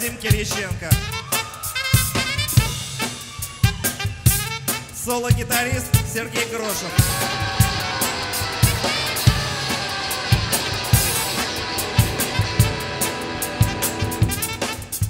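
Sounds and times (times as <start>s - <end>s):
drum kit: 0.0s - 15.0s
electric guitar lead notes: 6.9s - 15.0s.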